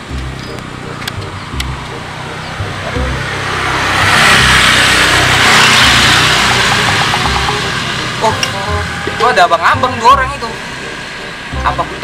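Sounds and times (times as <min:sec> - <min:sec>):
motor vehicle passing by: 0:00.0 - 0:12.0.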